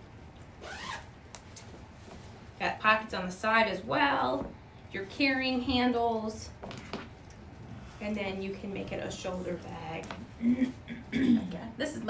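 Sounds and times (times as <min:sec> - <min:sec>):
zipper on fabric bag: 0:00.6 - 0:01.1.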